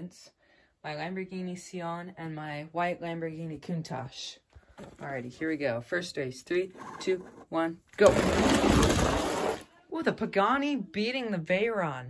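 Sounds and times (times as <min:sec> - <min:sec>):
toy cars rattling down cardboard ramp: 0:08.0 - 0:09.6.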